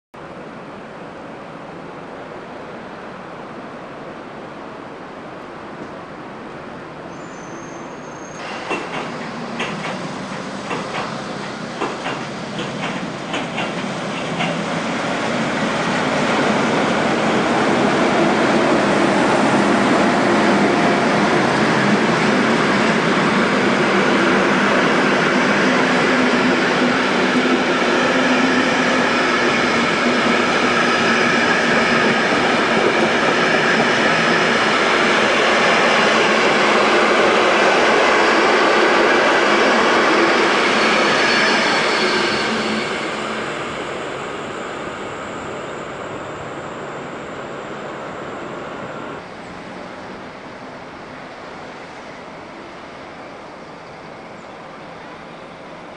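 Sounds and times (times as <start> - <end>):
train rolling rumble: 0.2 - 55.9.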